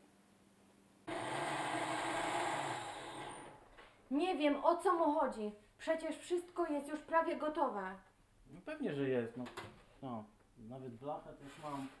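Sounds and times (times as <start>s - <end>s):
blender motor whirring: 1.1s - 3.6s.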